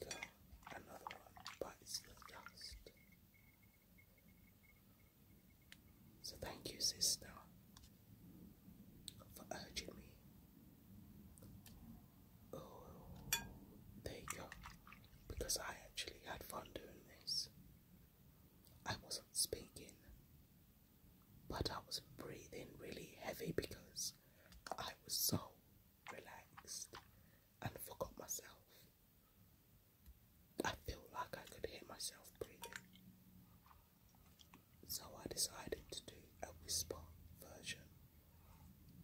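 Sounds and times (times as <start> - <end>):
soft whispering: 0.0 - 3.1, 6.2 - 7.9, 9.1 - 10.2, 12.5 - 13.2, 14.0 - 14.6, 15.3 - 17.6, 18.8 - 20.2, 21.5 - 28.9, 30.6 - 32.8, 34.8 - 38.8.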